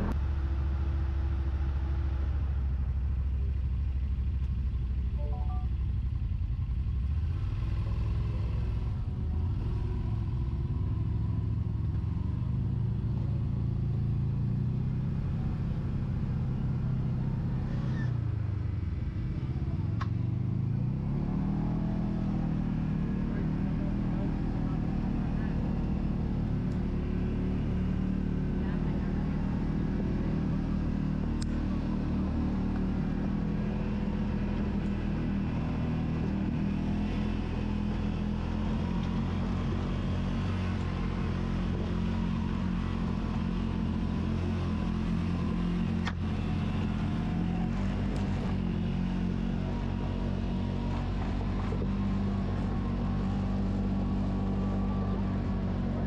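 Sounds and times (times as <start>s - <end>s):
utility vehicle engine running: 0.0s - 56.0s.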